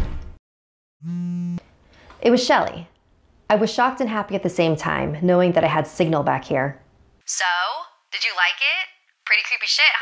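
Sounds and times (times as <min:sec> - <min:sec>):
door slam thud: 0:00.0 - 0:00.4
mobile phone buzz: 0:01.0 - 0:01.6.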